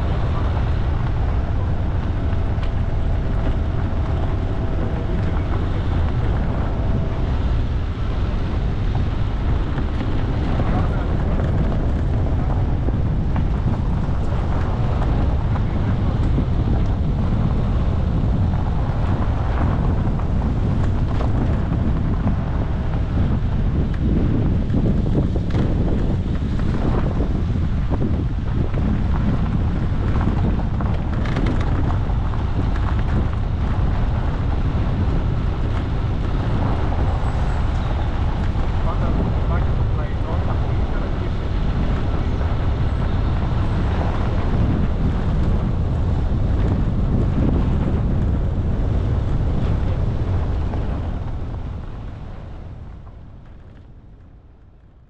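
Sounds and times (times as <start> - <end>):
vehicle driving on gravel road: 0.0 - 55.0
wind buffeting microphone: 0.0 - 55.0.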